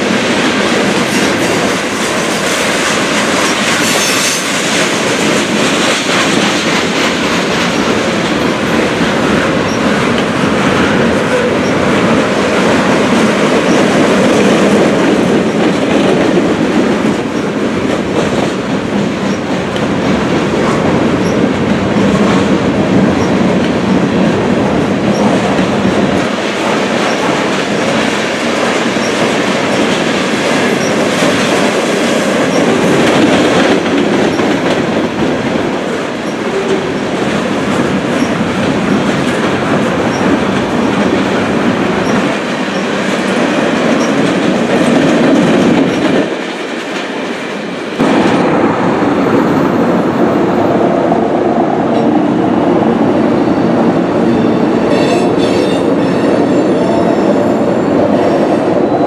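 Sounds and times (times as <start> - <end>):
freight train wheels clattering: 0.0 - 59.0.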